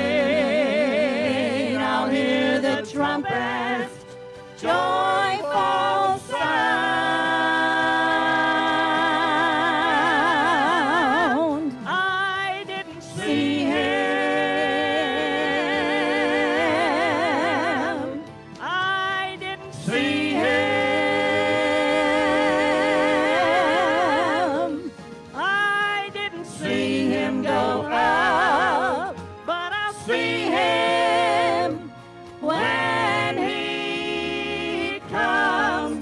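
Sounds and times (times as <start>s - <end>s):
vocal quartet singing gospel: 0.0s - 36.0s.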